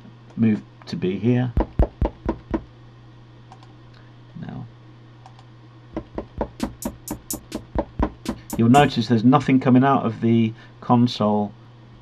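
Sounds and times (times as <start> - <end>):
steady low hum: 0.0 - 9.6
fingers tapping controller pads: 1.6 - 2.6, 6.0 - 8.9.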